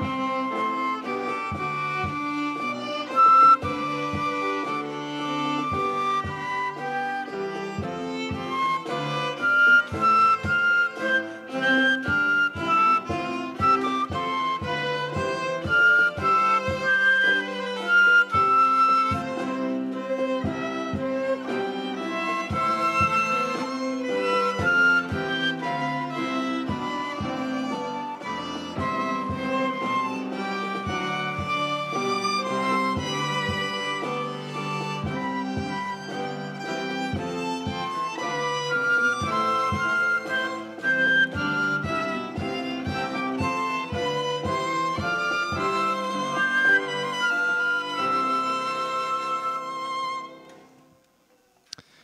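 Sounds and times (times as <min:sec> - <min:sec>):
piano accompaniment: 0:00.0 - 0:51.5
flute: 0:00.0 - 0:51.6
violin: 0:00.0 - 0:52.0.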